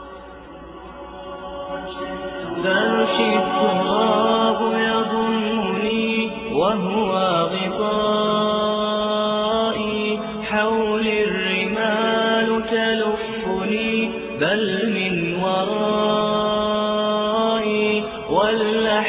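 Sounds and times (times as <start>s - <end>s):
voices singing sustained notes: 0.0s - 19.0s.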